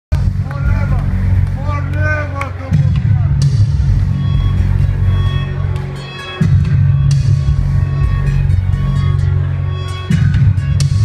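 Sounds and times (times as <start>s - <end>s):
loud synth-pop music: 0.1s - 11.0s.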